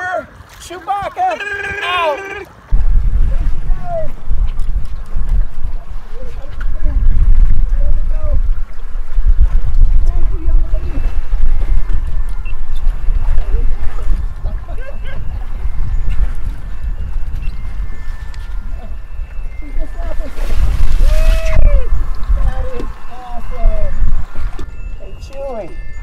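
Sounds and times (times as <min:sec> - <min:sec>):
excited voices calling out: 0:00.0 - 0:02.6, 0:21.1 - 0:24.0
sea water sloshing: 0:00.0 - 0:25.6
wind buffeting microphone: 0:02.7 - 0:26.0
water splash: 0:20.1 - 0:23.1.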